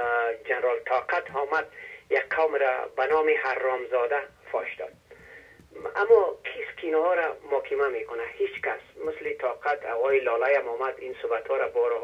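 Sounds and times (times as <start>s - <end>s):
person talking over telephone: 0.0s - 5.0s, 5.7s - 12.0s.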